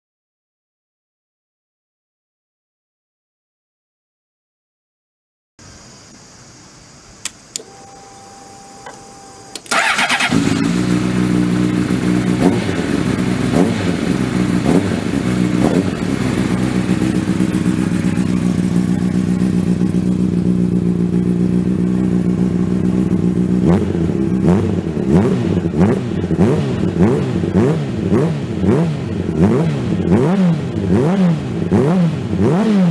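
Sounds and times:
faint clicks: 0:07.2 - 0:07.7
motorcycle starter cranking: 0:07.5 - 0:12.0
motorcycle engine idling and revving: 0:07.6 - 0:32.9.

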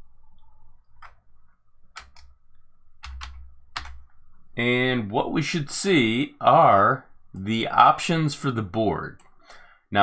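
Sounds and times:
keyboard keystrokes: 0:03.0 - 0:04.0.

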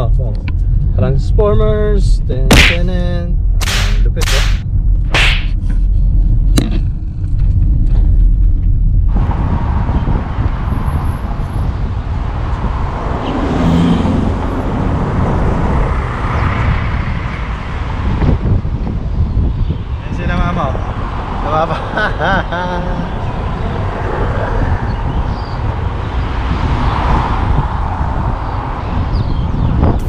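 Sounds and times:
car interior rumble: 0:00.0 - 0:20.0
wind and road noise: 0:00.0 - 0:30.0.

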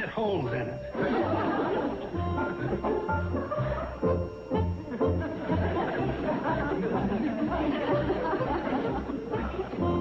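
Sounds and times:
studio audience laughing: 0:01.0 - 0:04.1, 0:04.9 - 0:09.8.

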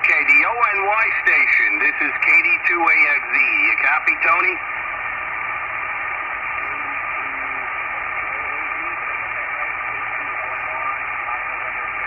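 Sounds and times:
radio static hiss: 0:00.0 - 0:12.0.

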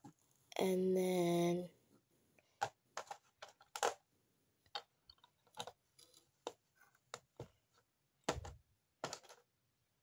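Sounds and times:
plastic pieces clicking: 0:02.6 - 0:07.2.

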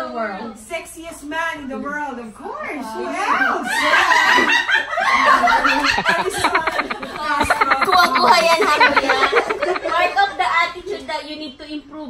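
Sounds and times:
people laughing loudly: 0:03.7 - 0:10.4.

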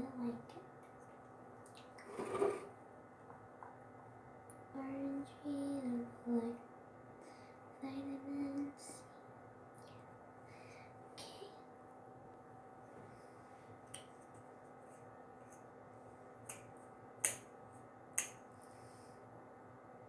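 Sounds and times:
girl's quiet voice: 0:00.0 - 0:00.5, 0:04.7 - 0:06.6, 0:07.8 - 0:09.1, 0:11.2 - 0:11.6.

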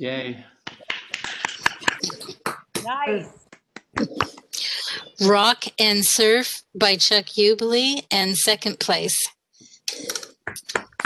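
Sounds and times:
people clapping: 0:00.6 - 0:04.6, 0:10.5 - 0:11.0.

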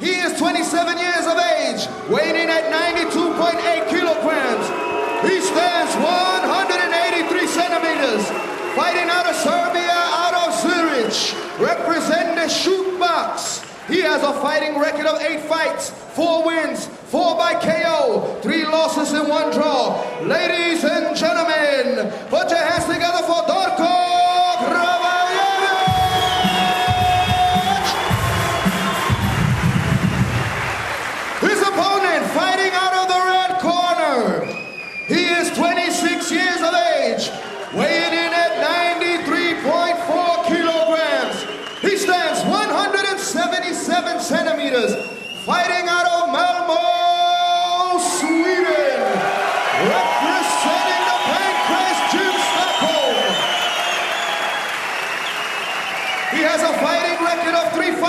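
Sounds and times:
crowd cheering: 0:00.0 - 0:15.8, 0:19.2 - 0:45.6, 0:46.3 - 0:58.0
arena music with heavy bass: 0:25.8 - 0:30.5.

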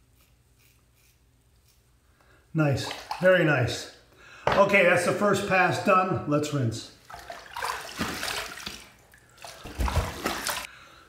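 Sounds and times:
water splashing at a sink: 0:02.8 - 0:03.3, 0:07.0 - 0:10.7.

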